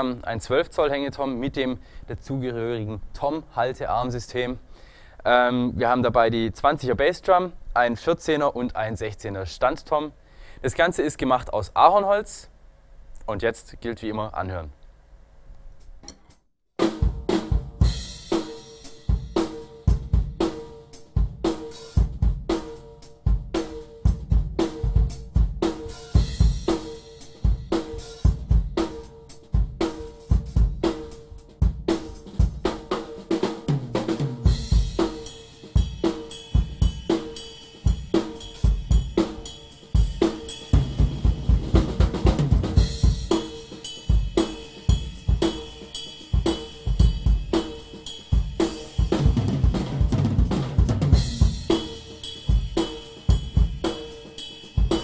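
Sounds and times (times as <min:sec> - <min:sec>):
drum kit groove: 0:15.8 - 0:55.0
hi-hat and cymbals: 0:16.8 - 0:55.0.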